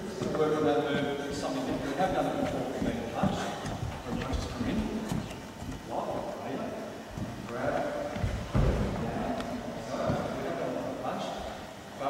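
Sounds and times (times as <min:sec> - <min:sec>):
low voices in echoing hall: 0:00.0 - 0:12.0.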